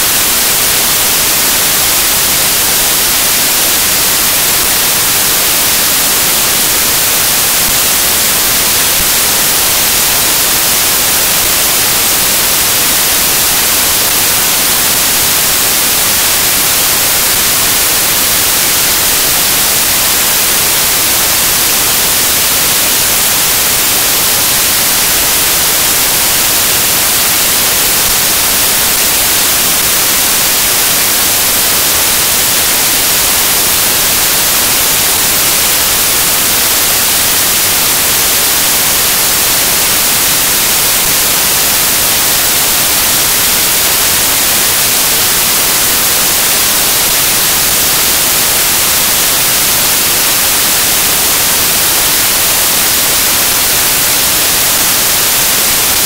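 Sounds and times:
static hiss: 0.0s - 56.0s.

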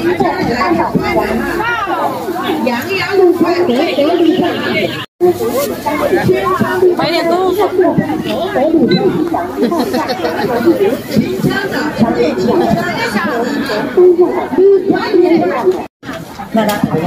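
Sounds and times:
people talking overlapping: 0.0s - 17.0s.

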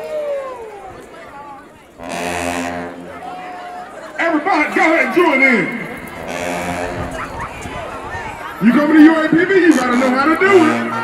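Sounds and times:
loud low horn blast: 2.0s - 3.3s, 5.8s - 7.2s, 9.4s - 11.0s.

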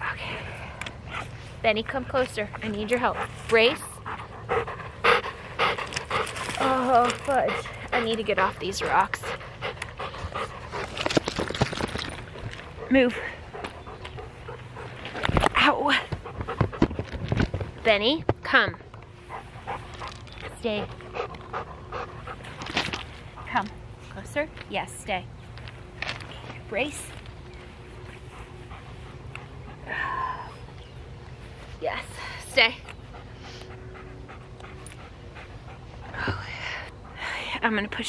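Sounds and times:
dog panting: 2.6s - 11.3s, 12.6s - 15.4s, 16.2s - 17.1s, 19.2s - 24.0s, 27.9s - 29.9s, 32.6s - 37.2s.

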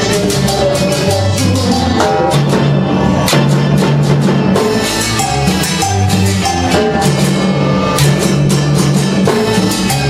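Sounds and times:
congas and timbales beat: 0.0s - 10.0s
electric bass line: 0.0s - 10.0s
keyboard: 0.0s - 10.0s.

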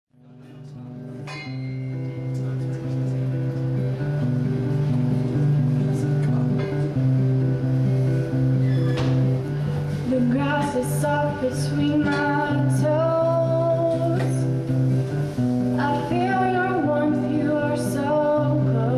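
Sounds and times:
acoustic guitar picking: 0.2s - 18.9s.

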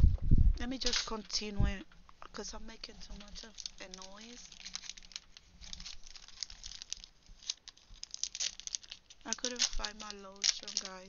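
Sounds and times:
plastic wrapper crinkling: 0.7s - 1.5s, 2.8s - 11.0s.

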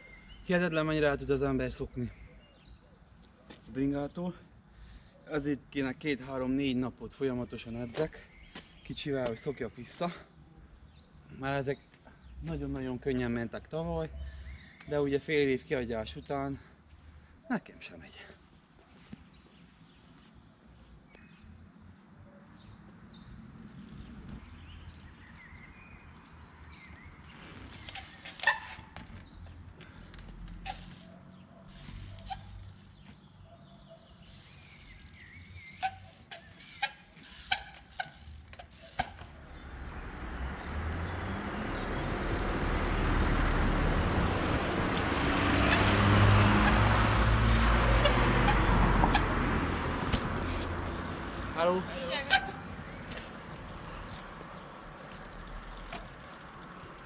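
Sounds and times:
passing car road noise: 34.2s - 57.0s.

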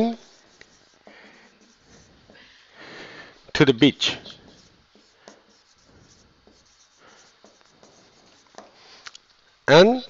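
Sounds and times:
marker pen writing on whiteboard: 0.0s - 2.5s, 3.4s - 9.0s.

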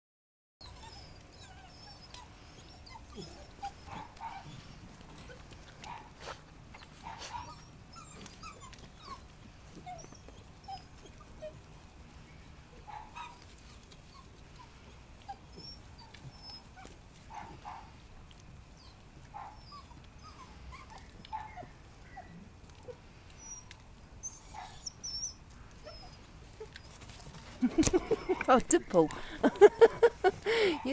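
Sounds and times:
puppies whimpering and yelping: 0.6s - 30.9s.

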